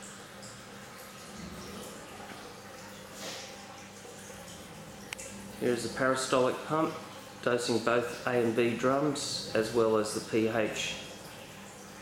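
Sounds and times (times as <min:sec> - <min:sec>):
dosing pump humming: 0:00.0 - 0:12.0.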